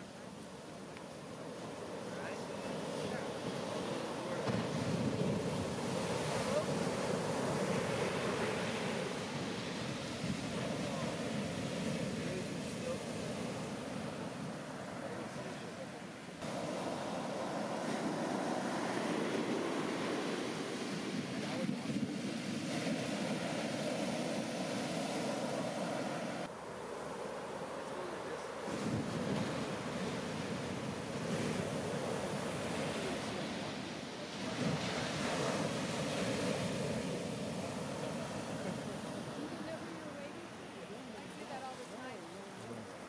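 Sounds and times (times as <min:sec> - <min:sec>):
waves crashing on shore: 0:00.0 - 0:43.0
whitewater rushing up sand: 0:00.0 - 0:43.0.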